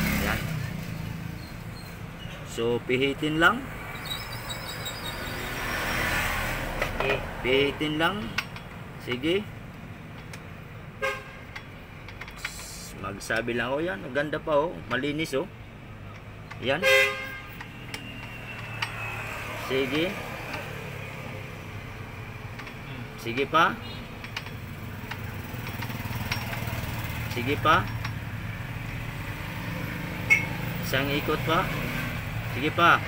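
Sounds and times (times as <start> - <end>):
horn-like honk: 11.0 - 11.5, 16.8 - 17.6.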